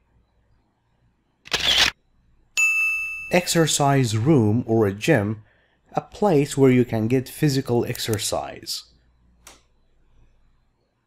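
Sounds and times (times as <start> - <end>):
camera shutter sound effect: 1.4 - 2.0.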